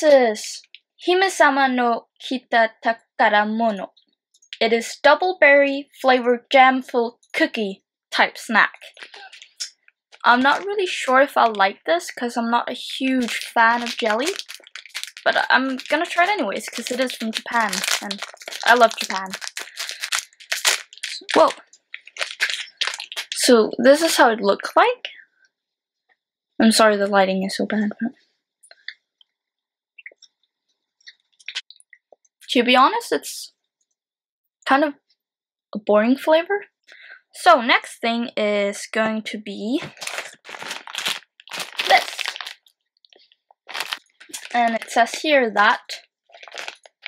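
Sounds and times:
plastic wrapper tearing and crinkling: 0:08.8 - 0:11.7, 0:12.8 - 0:23.5, 0:39.8 - 0:42.7, 0:43.6 - 0:45.3, 0:45.9 - 0:47.0.

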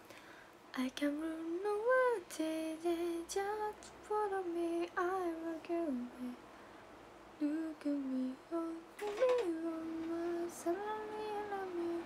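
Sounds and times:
woman singing softly: 0:00.7 - 0:06.4, 0:07.4 - 0:12.0.

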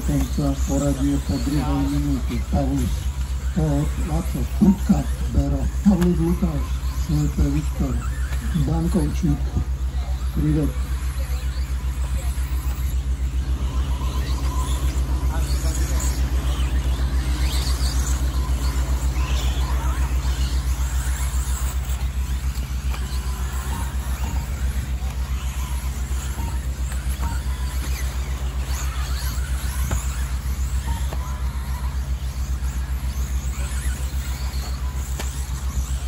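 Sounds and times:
loud pulsing low rumble: 0:00.0 - 0:36.0
rc car motors whining: 0:00.0 - 0:36.0.

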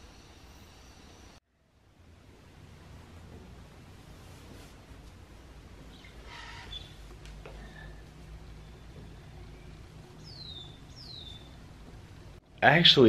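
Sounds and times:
high bird calls: 0:05.8 - 0:11.8.

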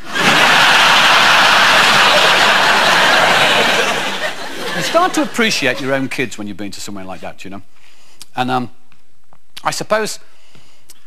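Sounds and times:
audience applauding: 0:00.0 - 0:06.1
audience laughing: 0:00.0 - 0:06.3.

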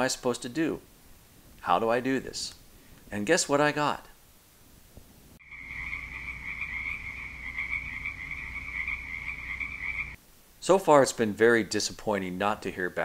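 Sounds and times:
night chorus of chirping creatures: 0:05.4 - 0:10.2.

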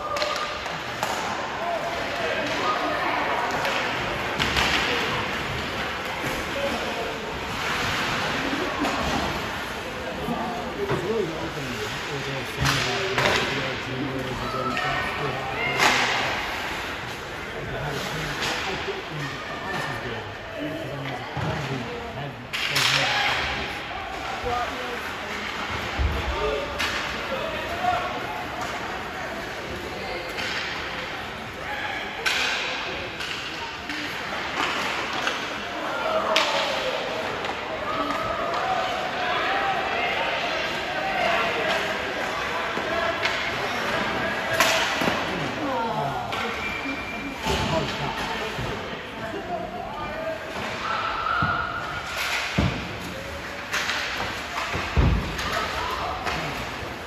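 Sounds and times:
hockey sticks and puck clacking: 0:00.0 - 0:11.1, 0:11.8 - 0:14.8, 0:15.7 - 0:19.3, 0:22.5 - 0:24.5, 0:25.1 - 0:31.6, 0:32.2 - 0:39.2, 0:40.4 - 0:45.6, 0:46.2 - 0:49.5, 0:50.4 - 0:57.0
echoing rink noise: 0:00.0 - 0:57.0.

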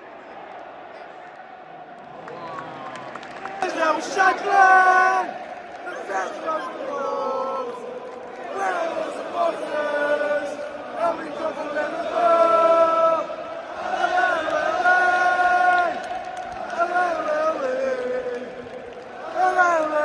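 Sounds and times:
stadium crowd singing: 0:00.0 - 0:20.0.

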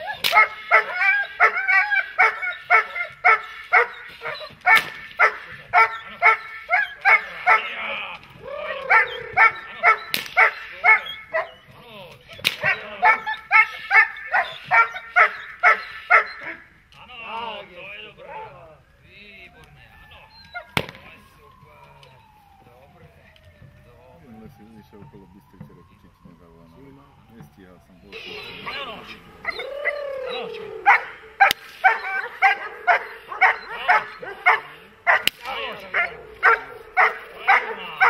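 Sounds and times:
dog barking: 0:00.0 - 0:07.9, 0:08.8 - 0:11.6, 0:12.6 - 0:16.7, 0:28.2 - 0:38.0
sharp cracks: 0:00.0 - 0:11.1, 0:12.1 - 0:13.4, 0:20.6 - 0:22.2, 0:28.2 - 0:37.6.

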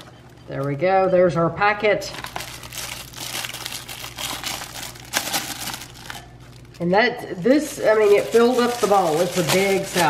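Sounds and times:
plastic packets crinkling: 0:02.1 - 0:10.0
shredded salad rustling: 0:07.6 - 0:10.0.

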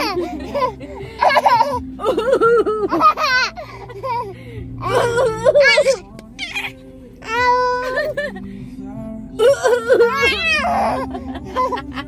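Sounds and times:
baby laughing: 0:00.0 - 0:08.3, 0:09.4 - 0:12.0
baby squealing: 0:04.8 - 0:07.8, 0:10.1 - 0:11.0.

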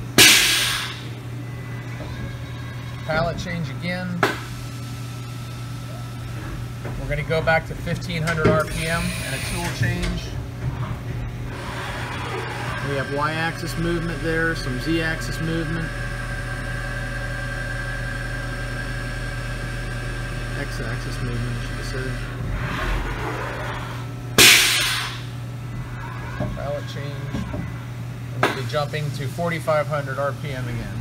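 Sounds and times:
machine hum: 0:00.0 - 0:31.0.

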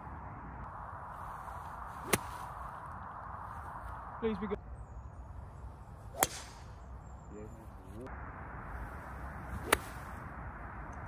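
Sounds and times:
golf club striking ball: 0:06.2 - 0:06.6.

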